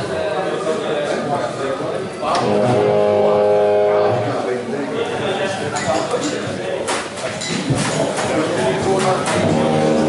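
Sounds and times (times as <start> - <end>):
electric guitar chord ringing: 2.4 - 4.1.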